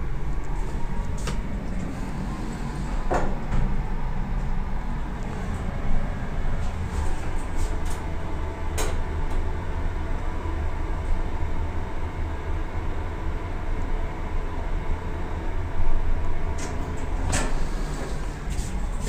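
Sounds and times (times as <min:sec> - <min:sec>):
elevator humming: 0:00.0 - 0:19.0.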